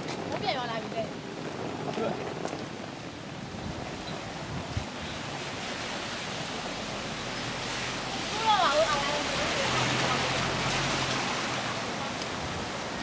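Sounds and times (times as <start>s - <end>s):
suitcases rolling on wet asphalt: 0.0s - 13.0s.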